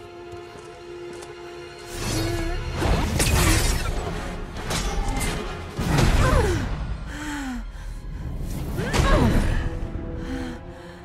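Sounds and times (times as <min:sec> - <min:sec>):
dramatic film score: 0:00.0 - 0:11.0.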